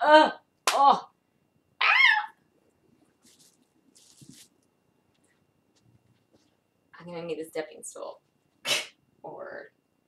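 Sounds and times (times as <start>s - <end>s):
faint rustles of movement: 2.9s - 6.8s.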